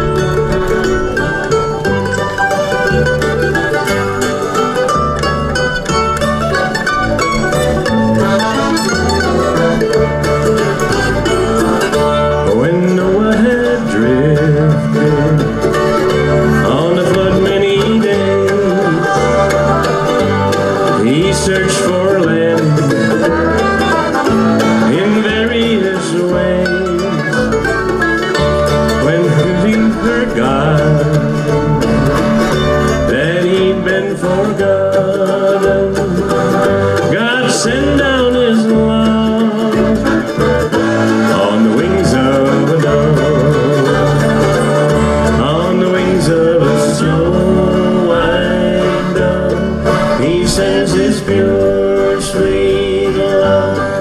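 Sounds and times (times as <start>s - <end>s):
accordion: 0.0s - 54.0s
acoustic guitar: 0.0s - 54.0s
banjo: 0.0s - 54.0s
mandolin: 0.0s - 54.0s
upright bass plucking: 0.0s - 54.0s.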